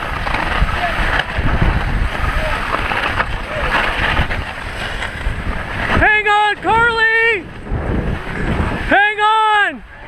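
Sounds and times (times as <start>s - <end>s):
skis and toboggan sliding on snow: 0.0s - 10.0s
wind rushing over microphone: 0.0s - 10.0s.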